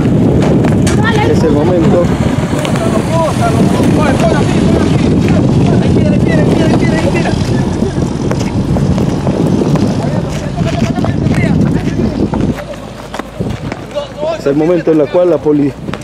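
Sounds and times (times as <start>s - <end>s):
truck engine rumbling: 0.0s - 16.0s.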